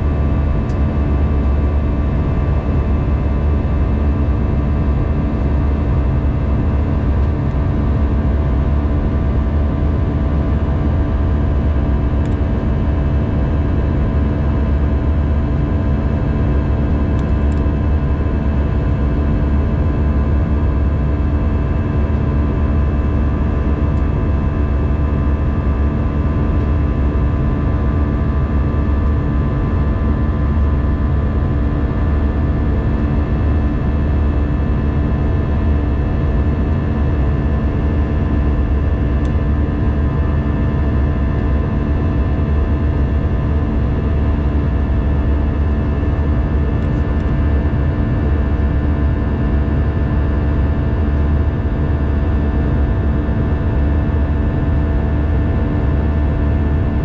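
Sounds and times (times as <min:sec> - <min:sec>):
jet engine and airflow rumble: 0:00.0 - 0:57.0.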